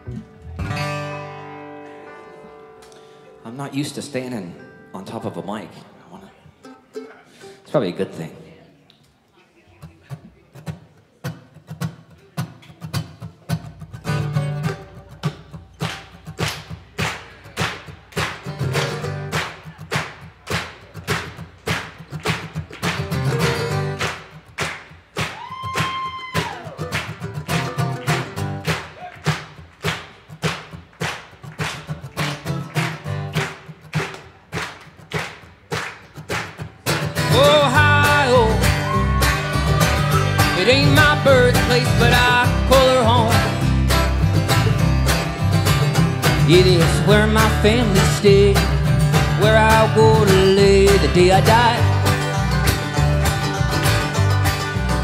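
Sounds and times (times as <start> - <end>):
bass guitar: 0.0 - 3.2, 13.0 - 24.4, 26.5 - 28.8, 31.6 - 34.1, 36.3 - 55.0
acoustic guitar strumming: 0.0 - 8.3, 9.8 - 55.0
mandolin: 0.0 - 8.3, 9.7 - 25.3, 26.7 - 55.0.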